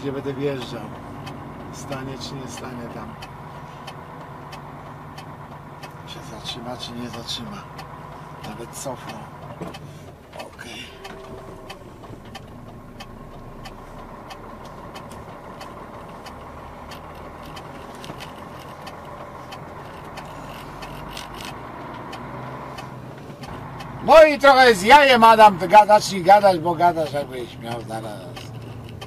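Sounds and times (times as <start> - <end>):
light clicks and rattles: 0.0 - 24.2, 25.0 - 29.0
truck engine running: 0.0 - 29.0.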